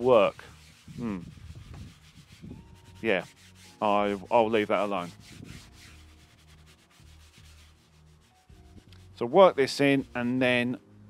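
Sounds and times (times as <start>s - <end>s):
brush scrubbing leather: 0.0s - 10.5s.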